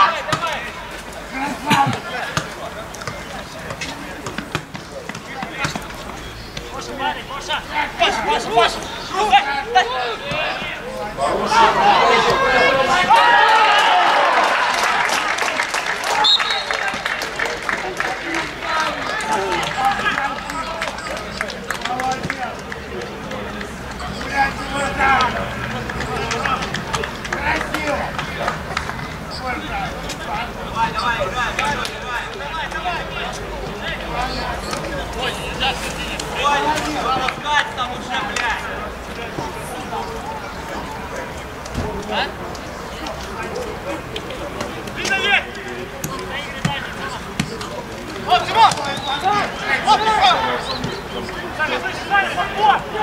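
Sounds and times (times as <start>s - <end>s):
men shouting and calling out: 0.0s - 53.0s.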